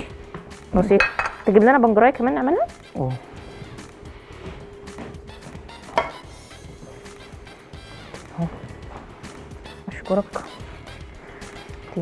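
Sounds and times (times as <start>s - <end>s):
low background music: 0.0s - 12.0s
handling glass dish: 1.0s - 1.4s, 5.8s - 6.3s.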